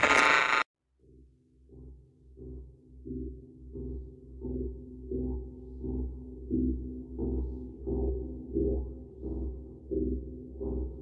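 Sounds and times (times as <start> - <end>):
glitchy burst of music: 0.0 - 0.7.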